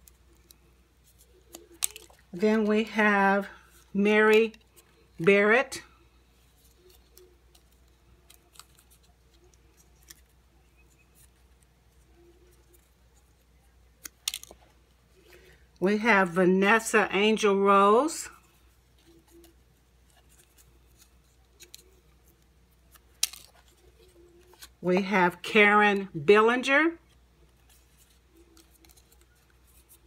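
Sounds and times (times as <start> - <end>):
paper rustling: 0.0 - 3.9, 18.4 - 24.8.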